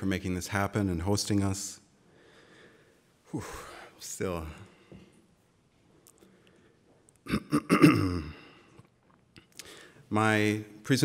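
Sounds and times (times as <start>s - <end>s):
man clearing his throat: 7.2s - 8.7s.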